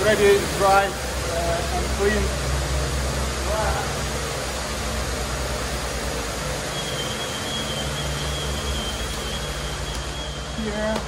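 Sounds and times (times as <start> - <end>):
faint high whine: 0.0 - 11.0
low machine hum: 0.0 - 11.0.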